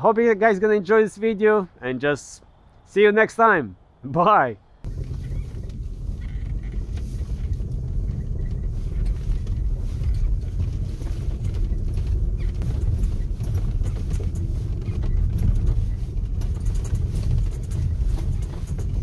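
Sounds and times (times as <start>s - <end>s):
vehicle engine rumbling: 4.8s - 19.0s
light clicks and rattles: 4.9s - 19.0s.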